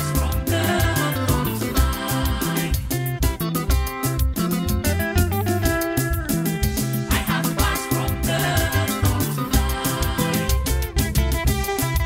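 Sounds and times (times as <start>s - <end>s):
steady drum beat: 0.0s - 11.9s
bass: 0.0s - 12.0s
guitar melodic line: 0.0s - 12.0s.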